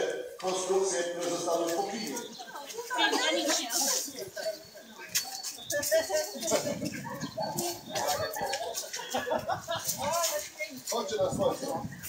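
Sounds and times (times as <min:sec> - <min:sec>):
group of people chattering: 0:00.0 - 0:12.0.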